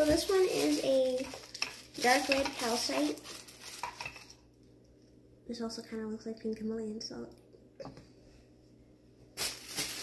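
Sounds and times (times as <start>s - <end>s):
tissue paper rustling: 0.0s - 4.2s, 9.4s - 10.0s.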